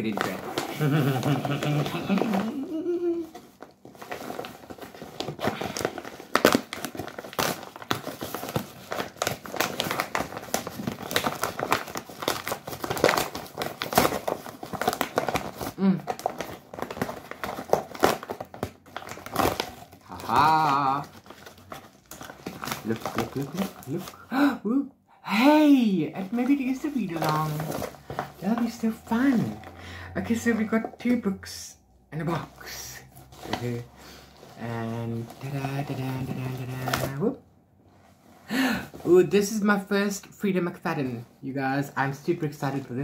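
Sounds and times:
paper and bubble wrap crinkling: 0.0 - 24.2, 25.3 - 31.4, 32.2 - 37.4, 38.0 - 43.0
paper tearing: 4.0 - 24.2.

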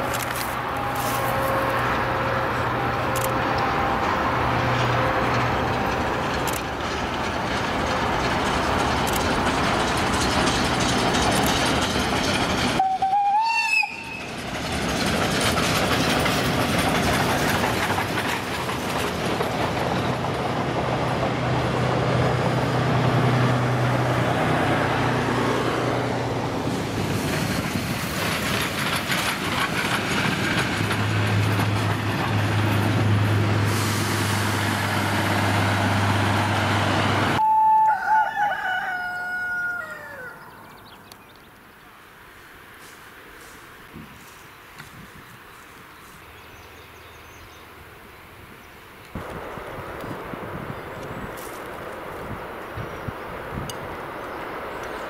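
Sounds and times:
steam train rumbling past: 0.0 - 37.8
short wavering call: 37.4 - 38.1.

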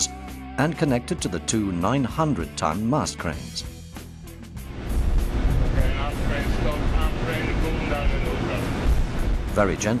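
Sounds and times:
background music: 0.0 - 10.0
heavy low rumble: 4.6 - 9.8.

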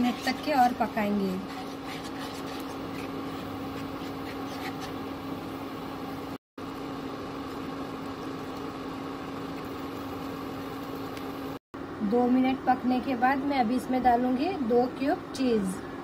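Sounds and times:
spatula scraping a pan: 0.0 - 5.1
low electrical hum: 0.0 - 16.0.

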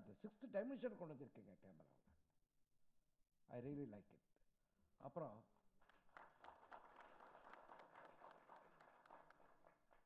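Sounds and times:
faint audience applause: 5.8 - 10.0.

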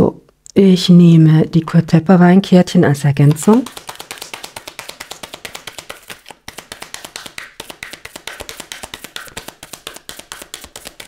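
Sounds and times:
cards being shuffled: 3.2 - 11.0.

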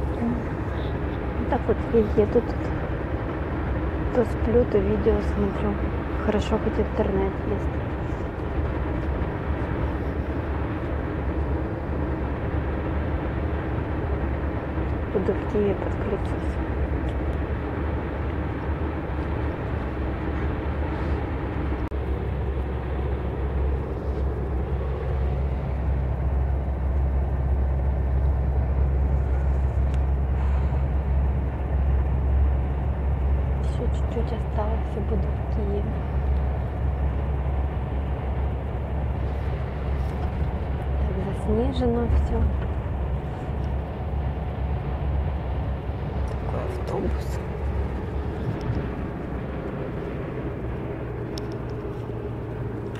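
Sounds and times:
bus low rumble: 0.0 - 52.9.

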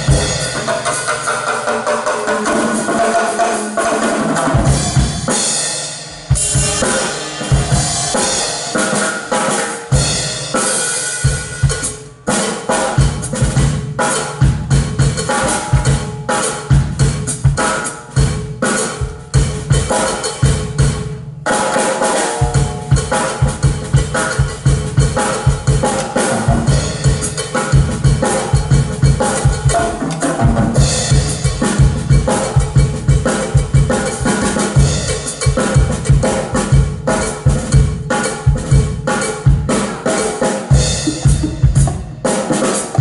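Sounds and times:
drum solo: 0.0 - 43.0
washing cymbals: 3.4 - 13.4.

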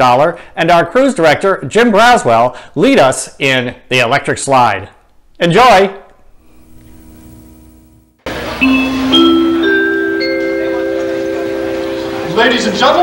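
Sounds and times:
faint hum: 6.2 - 12.4
tape hiss: 6.3 - 13.0
electronic keyboard chime: 8.3 - 13.0.

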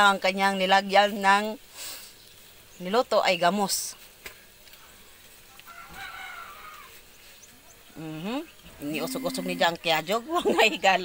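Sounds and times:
rooster crowing faintly: 5.6 - 7.0.

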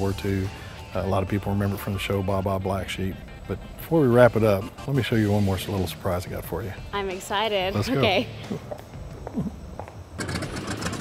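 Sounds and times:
radial engine running: 0.0 - 11.0.

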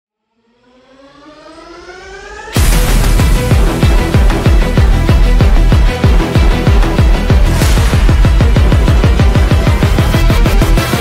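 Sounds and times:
synthesized riser tone: 0.1 - 4.0.

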